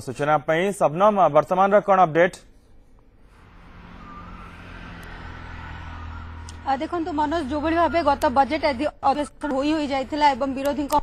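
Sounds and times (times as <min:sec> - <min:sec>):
distant road traffic: 0:02.8 - 0:11.0.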